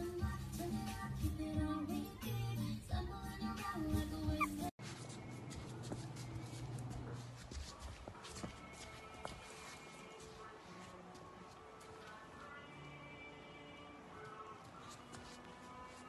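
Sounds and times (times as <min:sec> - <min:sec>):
music with singing: 0:00.0 - 0:04.8, 0:07.8 - 0:16.0.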